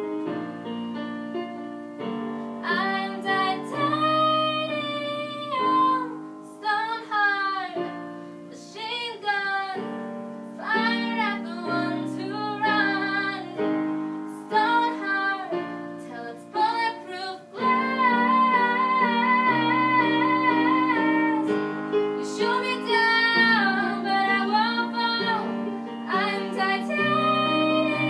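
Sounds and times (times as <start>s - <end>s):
upright piano chords: 0.0s - 28.0s
young female voice singing: 2.6s - 28.0s.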